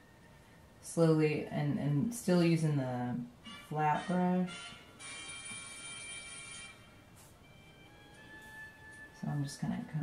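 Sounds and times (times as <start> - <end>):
bright many-pitched ringing tone: 3.4 - 9.9.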